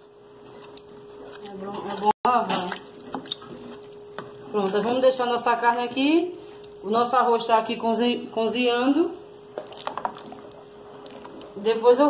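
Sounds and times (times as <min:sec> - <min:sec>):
faint steady hum: 0:00.0 - 0:12.0
rice simmering and bubbling: 0:02.8 - 0:06.8, 0:09.4 - 0:11.7.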